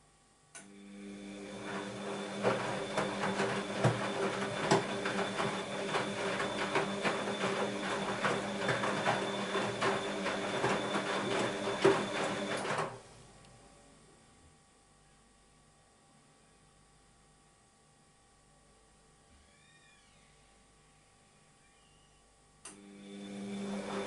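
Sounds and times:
washing machine motor hum: 0.6s - 13.8s, 22.6s - 24.0s.

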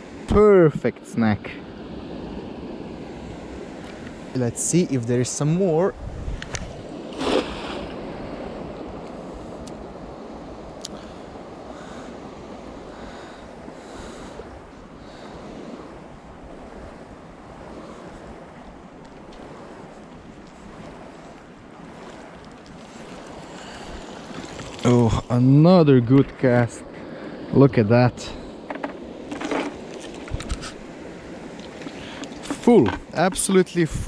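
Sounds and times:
rushing water: 0.0s - 34.0s
wind: 0.0s - 34.0s.

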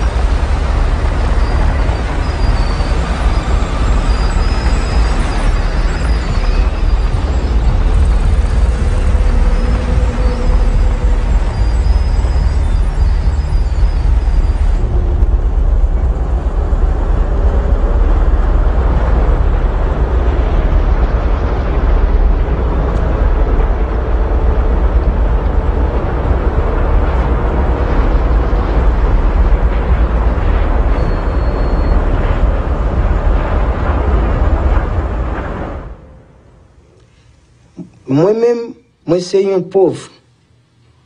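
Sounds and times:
diesel engine rumbling: 0.0s - 38.0s.

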